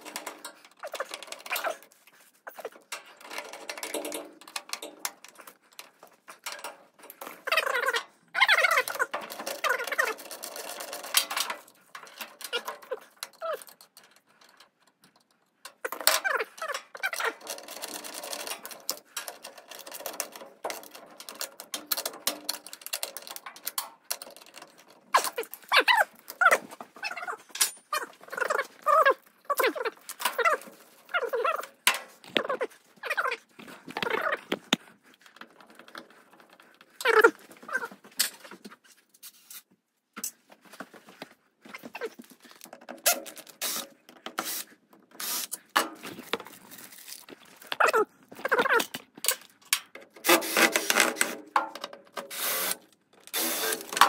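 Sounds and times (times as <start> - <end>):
metal parts rattling: 0.0 - 38.8, 41.7 - 54.0.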